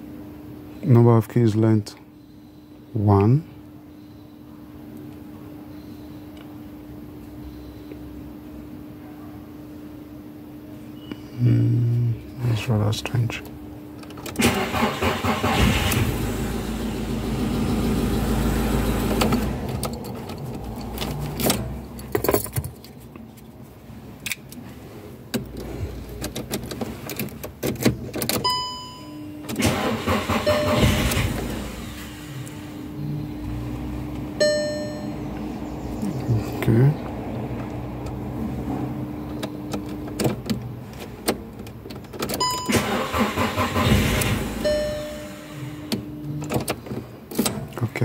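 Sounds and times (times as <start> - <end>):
car engine cranking: 14.0 - 23.2, 25.3 - 36.8, 37.4 - 47.8
car keys jangling: 19.2 - 23.5
short beeps: 28.4 - 29.4, 30.3 - 31.3, 34.4 - 35.4, 42.4 - 42.9, 44.6 - 45.9.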